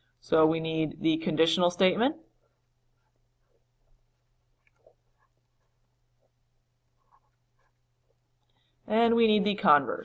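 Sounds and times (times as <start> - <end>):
person speaking: 0.2 - 8.1, 8.8 - 10.0.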